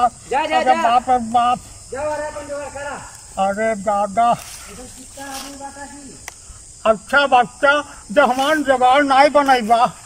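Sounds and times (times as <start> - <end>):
faint high hiss: 0.0 - 10.0.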